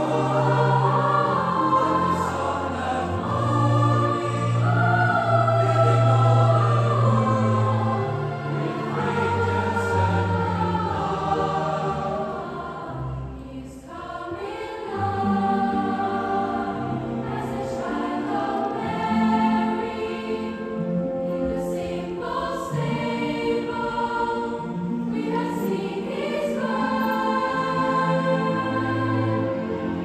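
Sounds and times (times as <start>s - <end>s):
orchestra accompanying: 0.0s - 13.4s
children's choir singing: 0.0s - 30.0s.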